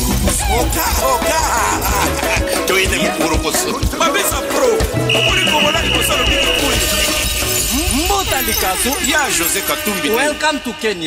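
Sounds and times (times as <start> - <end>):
rumba music with beat: 0.0 - 10.5
high steady tone: 5.1 - 8.7.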